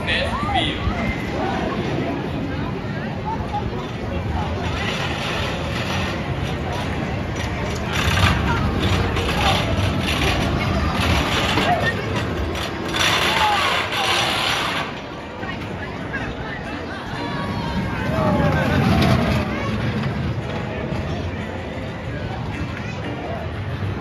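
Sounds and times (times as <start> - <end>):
crowd chatter: 0.0 - 24.0
roller coaster rumble on track: 0.0 - 24.0.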